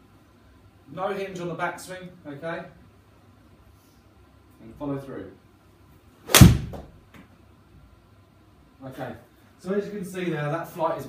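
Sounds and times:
golf club striking ball: 6.3s - 6.9s.

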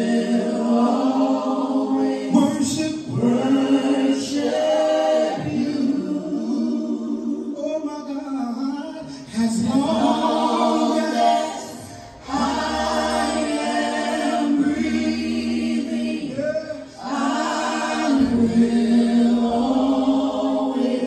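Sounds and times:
group singing a worship song: 0.0s - 7.7s, 9.0s - 21.0s.

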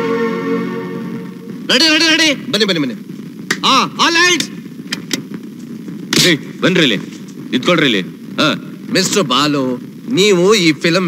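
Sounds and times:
man's voice: 1.7s - 3.0s, 3.6s - 4.6s.

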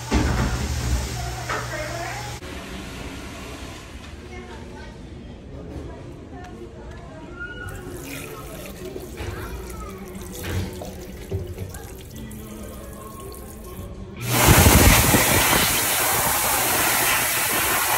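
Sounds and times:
tap water running: 0.0s - 2.4s, 7.7s - 17.9s
hand dryer air rush: 14.2s - 17.9s.

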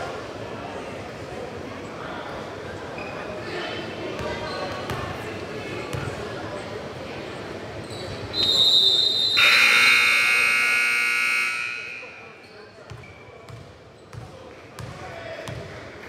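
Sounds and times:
referee's whistle blast: 8.3s - 12.4s
scoreboard buzzer: 9.4s - 12.3s.

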